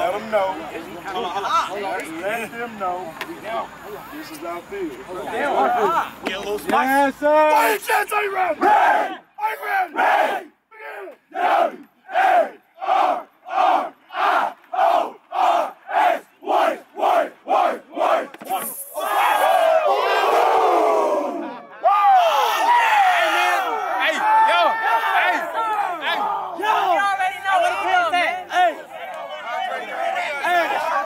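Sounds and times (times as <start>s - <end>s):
group cheering: 7.5s - 31.0s
team chanting in unison: 8.2s - 18.4s
excited yelling: 19.0s - 31.0s.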